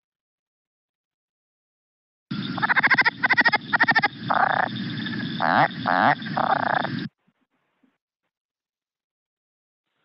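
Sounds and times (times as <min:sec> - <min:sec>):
frog call rapid pulses: 0:02.3 - 0:07.2.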